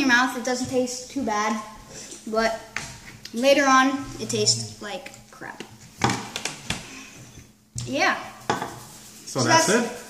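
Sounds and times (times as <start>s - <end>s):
person speaking: 3.3s - 5.2s, 9.1s - 10.0s.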